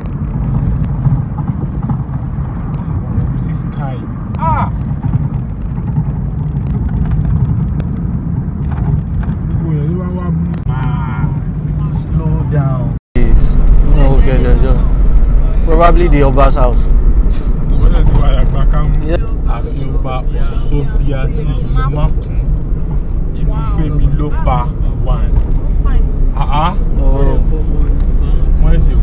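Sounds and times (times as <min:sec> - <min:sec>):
car engine and road rumble: 0:00.0 - 0:29.0.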